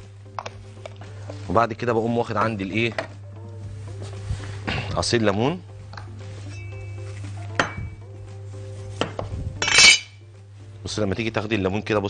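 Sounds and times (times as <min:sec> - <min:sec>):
utensils clattering: 0:09.6 - 0:10.2.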